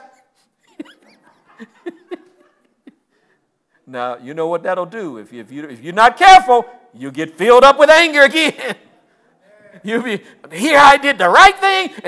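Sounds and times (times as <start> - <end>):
breaths: 3.0 - 3.9, 8.9 - 10.5.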